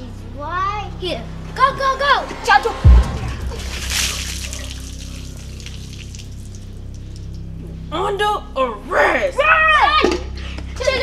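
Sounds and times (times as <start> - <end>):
light dripping: 4.4 - 7.6.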